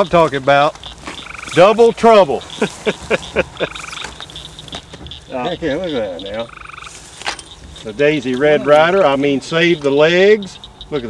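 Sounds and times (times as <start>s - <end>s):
frog trilling: 0.0s - 11.0s
night frog chorus: 0.0s - 11.0s.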